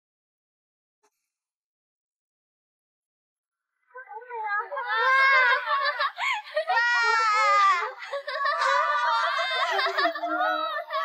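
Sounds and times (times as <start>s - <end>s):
woman's high-pitched cry of delight: 4.8s - 11.0s.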